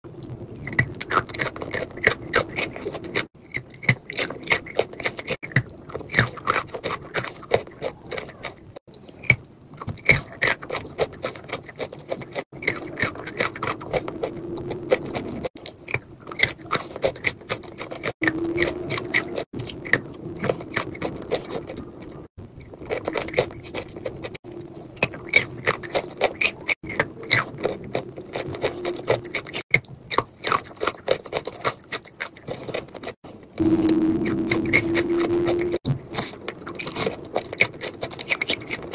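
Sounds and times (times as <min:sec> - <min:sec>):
squelching chewing: 0:00.2 - 0:33.2, 0:34.2 - 0:38.9
wet mouth eating sounds: 0:00.2 - 0:33.2, 0:34.2 - 0:38.9.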